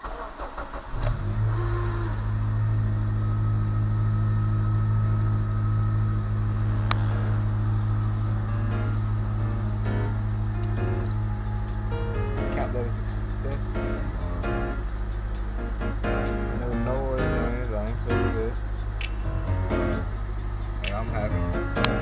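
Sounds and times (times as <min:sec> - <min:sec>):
car engine starting and idling: 0:00.0 - 0:22.0
short rising chirp: 0:10.1 - 0:12.4.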